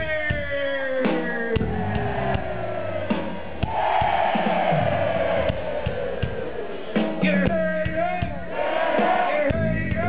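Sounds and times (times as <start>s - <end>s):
bass: 0.0s - 4.0s, 6.9s - 10.0s
drum hits: 0.0s - 10.0s
rock band playing live: 0.0s - 10.0s.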